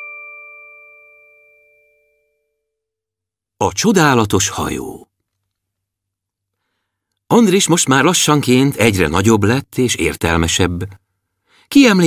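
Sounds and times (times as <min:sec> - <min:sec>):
metal chime ringing: 0:00.0 - 0:02.6.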